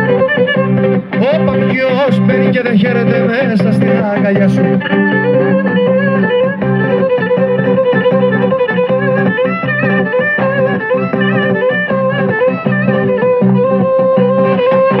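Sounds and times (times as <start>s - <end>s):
bowed string melody: 0.0s - 15.0s
plucked lute accompaniment: 0.0s - 15.0s.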